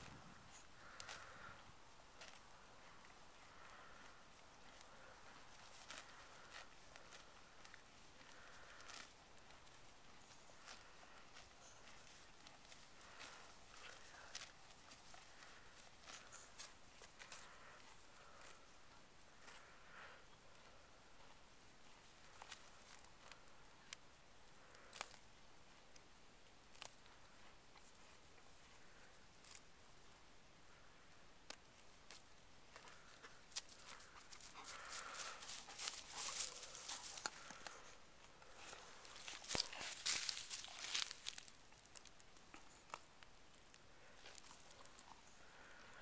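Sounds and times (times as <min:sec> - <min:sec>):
horse tearing and chewing grass: 0:00.0 - 0:29.7, 0:31.5 - 0:46.0
horse stepping through grass: 0:33.7 - 0:37.8, 0:38.5 - 0:42.0.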